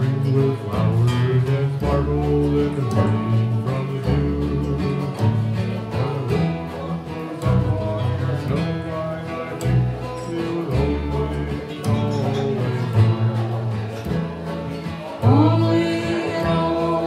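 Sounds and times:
acoustic guitar: 0:00.0 - 0:17.0
banjo: 0:00.0 - 0:17.0
dobro guitar: 0:00.0 - 0:17.0
upright bass: 0:00.0 - 0:17.0.

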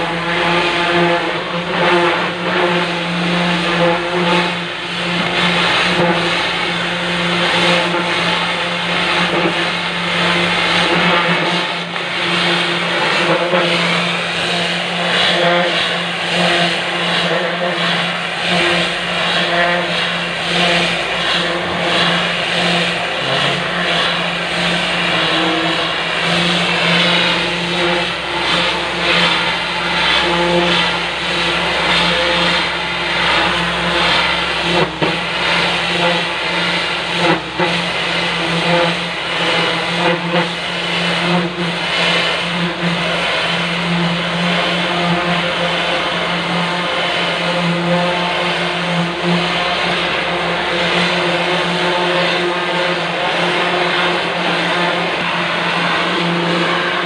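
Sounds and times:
pressure washer motor hum: 0:00.0 - 0:57.0
water jet hissing on hull: 0:00.0 - 0:57.0.

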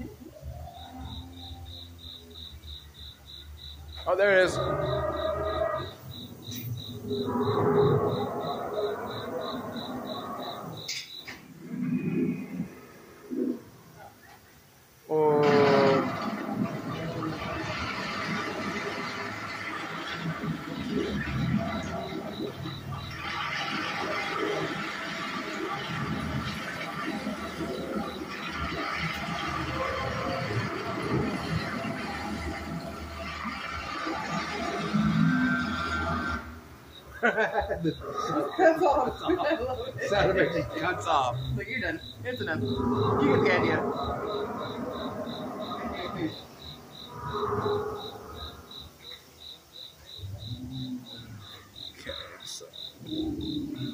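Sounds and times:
dinosaur roar: 0:00.0 - 0:03.1, 0:03.9 - 0:14.4, 0:15.1 - 0:49.1, 0:50.2 - 0:53.9.

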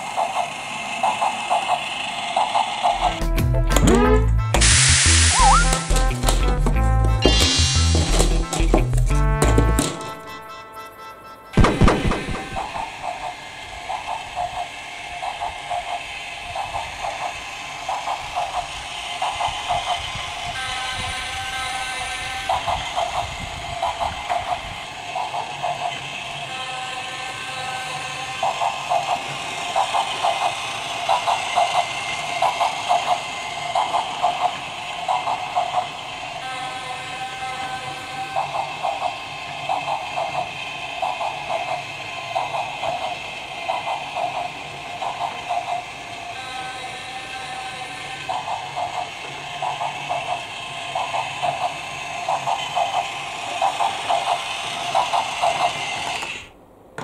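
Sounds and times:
toy train running on track: 0:00.0 - 0:03.2, 0:07.2 - 0:09.0, 0:09.8 - 0:56.5
toy train electronic chugging: 0:00.0 - 0:03.3, 0:03.9 - 0:09.1, 0:09.7 - 0:56.5
toy train whistle tone: 0:03.0 - 0:06.2, 0:09.8 - 0:11.6, 0:20.4 - 0:22.5, 0:36.4 - 0:38.4, 0:46.2 - 0:48.3.

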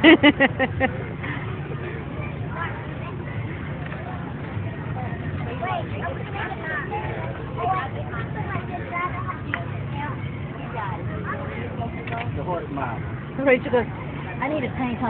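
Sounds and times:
people talking in background: 0:00.0 - 0:15.0.

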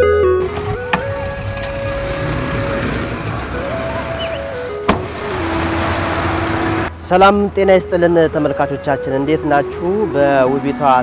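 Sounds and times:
cars passing: 0:00.4 - 0:11.0
soft background music: 0:07.0 - 0:11.0.

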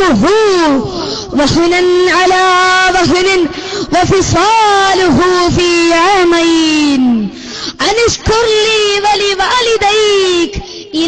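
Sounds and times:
boy chanting into a microphone: 0:00.0 - 0:11.0.

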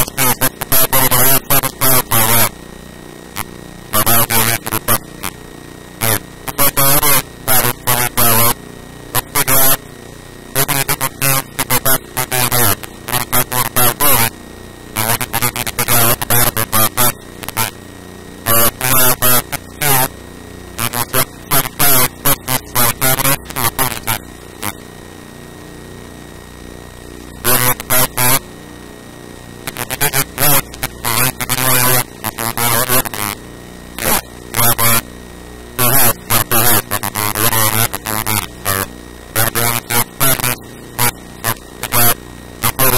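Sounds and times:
person talking: 0:00.0 - 0:02.5, 0:04.0 - 0:05.1, 0:06.0 - 0:08.6, 0:09.2 - 0:09.8, 0:10.6 - 0:14.3, 0:15.0 - 0:17.8, 0:18.5 - 0:20.1, 0:20.8 - 0:24.8, 0:27.4 - 0:28.5, 0:29.7 - 0:33.4, 0:34.0 - 0:35.0, 0:35.8 - 0:42.9
faint electrical hum: 0:00.0 - 0:42.9.

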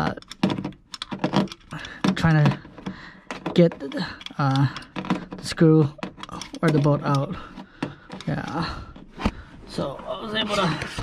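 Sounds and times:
hand ratchet clicking: 0:02.8 - 0:07.3.

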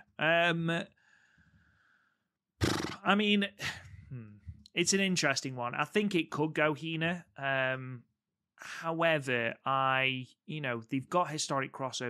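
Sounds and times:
man speaking: 0:00.0 - 0:00.8, 0:03.0 - 0:08.0, 0:08.6 - 0:12.0.

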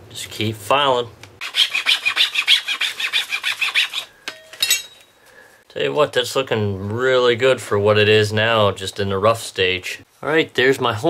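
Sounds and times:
hand file rasping on horn: 0:01.4 - 0:04.1.

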